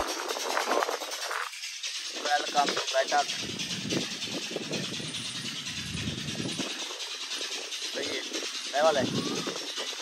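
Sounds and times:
steady hiss: 0.0 - 10.0
wind rumble on microphone: 0.0 - 10.0.

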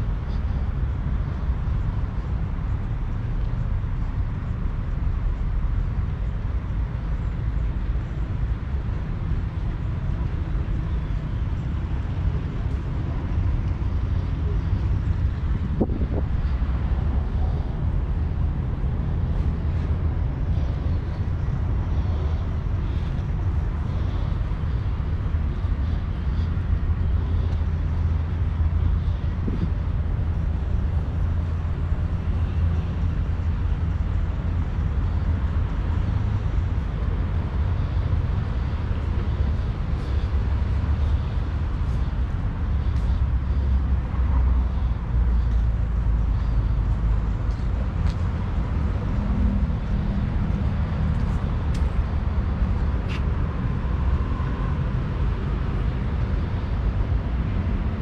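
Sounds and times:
low outdoor rumble: 0.0 - 58.0.

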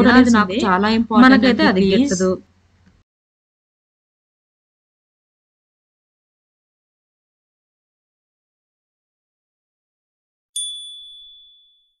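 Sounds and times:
high bell-like ding: 10.6 - 12.0.

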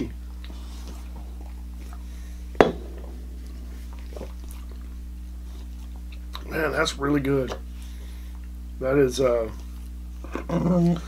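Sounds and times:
low electrical hum: 0.0 - 11.0
glass knocking on wooden table: 2.6 - 3.2.

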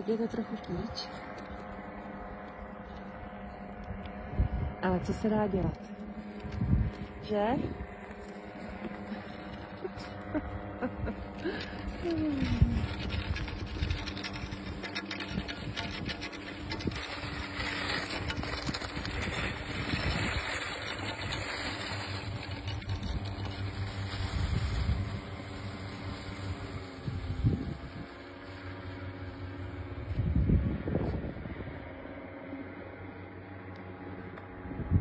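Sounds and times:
small engine droning overhead: 0.0 - 35.0
wind buffeting microphone: 3.1 - 8.0, 8.7 - 28.4, 29.2 - 32.0, 34.7 - 35.0.

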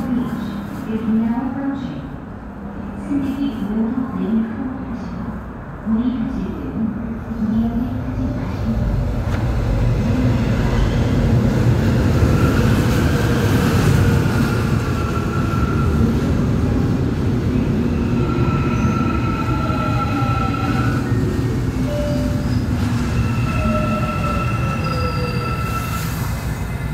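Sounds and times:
electric train rumbling on rails: 0.0 - 26.9
high squealing of wheels: 22.5 - 26.8.

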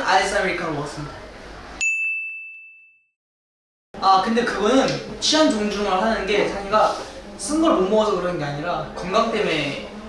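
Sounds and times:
bell-like ding: 1.8 - 3.1.

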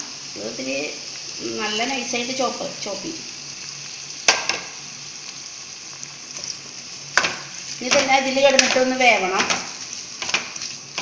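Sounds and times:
vegetables sizzling in hot oil: 0.0 - 11.0.

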